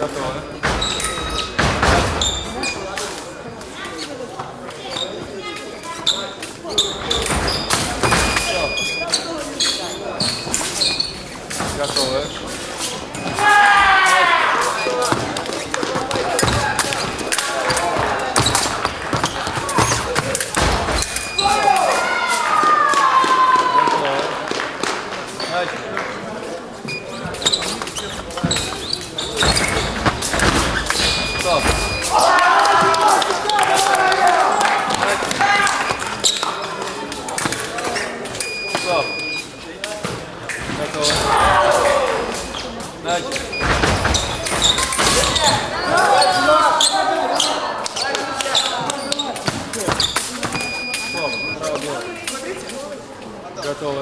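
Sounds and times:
loud shouts: 13.3s - 14.8s, 21.4s - 24.3s, 32.0s - 36.0s, 41.1s - 42.3s, 44.9s - 48.4s.

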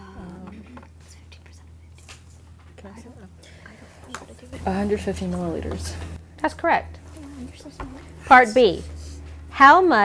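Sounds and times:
low steady hum: 0.0s - 10.0s
students whispering: 7.0s - 9.3s.

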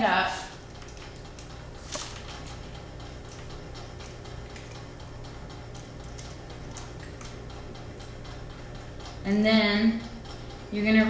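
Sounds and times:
low electrical hum: 0.0s - 11.0s
faint regular ticking: 0.5s - 11.0s.

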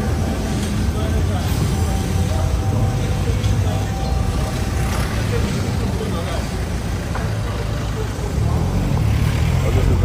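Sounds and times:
faint voices of passers-by: 0.0s - 10.0s
traffic rumble: 0.0s - 10.0s.

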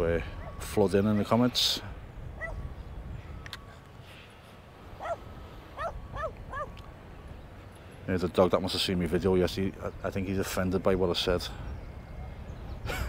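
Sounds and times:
dog barking: 2.4s - 2.6s, 5.0s - 5.2s, 5.8s - 6.7s.

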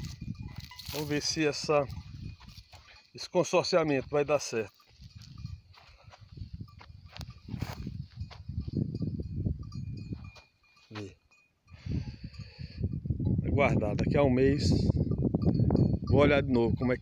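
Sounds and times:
wind noise on microphone: 0.0s - 3.0s, 4.0s - 10.5s, 11.7s - 17.0s.

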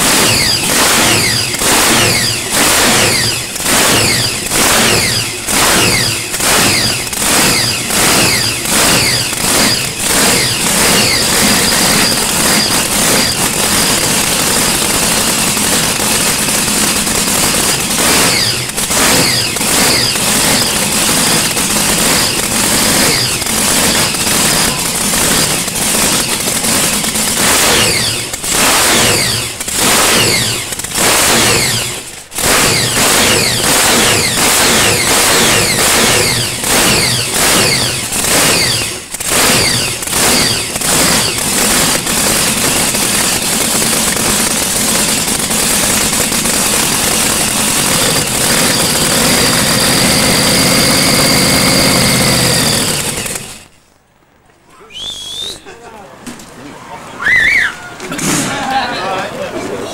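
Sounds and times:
dragster engine revving: 0.0s - 53.8s.

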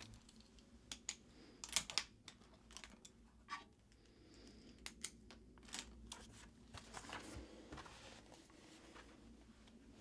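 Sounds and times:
drawing supplies clicking on desk: 0.0s - 3.2s.

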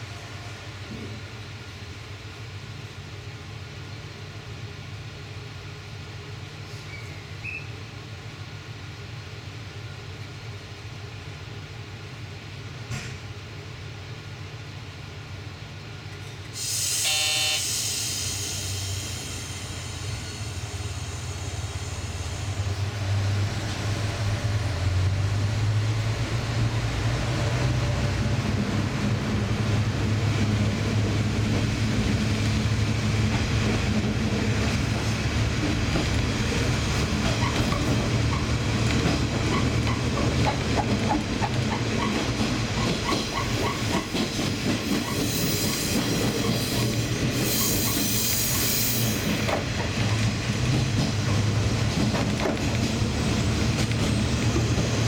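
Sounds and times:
diesel train engine accelerating: 0.0s - 55.0s
rail-joint clickety-clack: 0.8s - 1.3s, 12.8s - 13.4s, 26.8s - 55.0s
brief tone: 16.8s - 18.1s.

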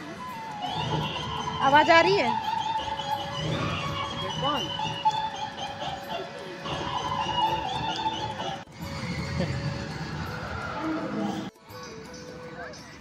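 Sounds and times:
voices: 0.0s - 8.7s
spooky music over loudspeakers: 0.0s - 13.0s
rising-and-falling cry: 0.2s - 11.5s.

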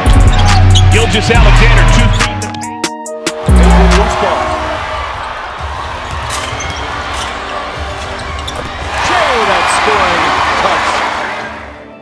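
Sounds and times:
arena crowd cheering: 3.3s - 11.8s.

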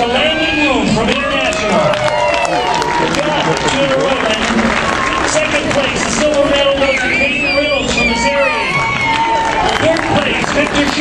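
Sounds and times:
crowd talking in a hall: 0.0s - 11.0s.

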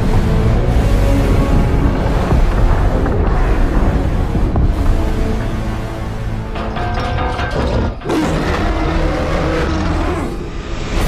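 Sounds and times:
dramatic music: 0.0s - 11.0s
metallic clicking and creaking: 6.5s - 9.9s.

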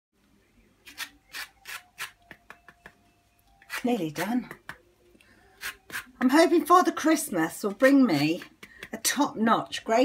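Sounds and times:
zest grating on hand grater: 3.7s - 4.3s.

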